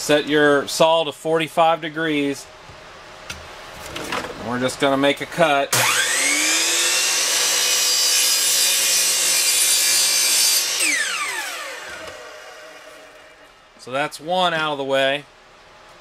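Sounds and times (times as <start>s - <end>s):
saw blade winding down: 5.7s - 13.4s
miter saw cutting plywood: 5.7s - 13.5s.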